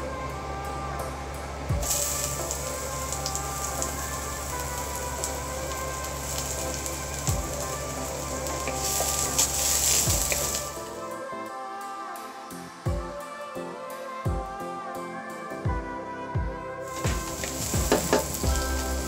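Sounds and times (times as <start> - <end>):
onions sizzling in hot oil: 1.8 - 10.8, 16.8 - 19.0.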